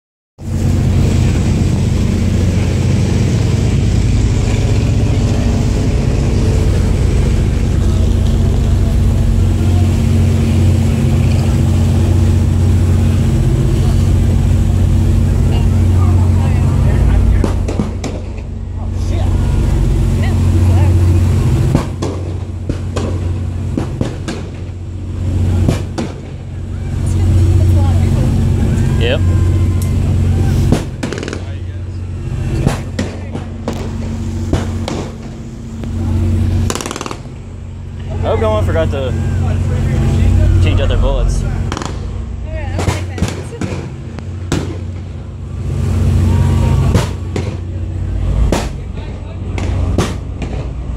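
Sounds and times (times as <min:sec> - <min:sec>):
boat engine droning: 0:00.4 - 0:50.9
faint voices: 0:12.9 - 0:21.6, 0:35.2 - 0:50.4.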